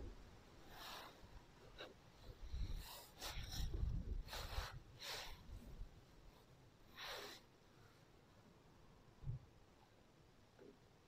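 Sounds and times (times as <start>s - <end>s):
person breathing close to microphone: 0.6s - 5.9s.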